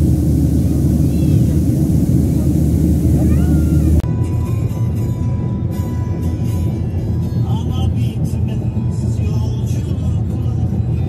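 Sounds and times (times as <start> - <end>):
jet airliner cabin roar: 0.0 - 11.0
rumble inside moving car: 0.0 - 11.0
music: 3.2 - 11.0.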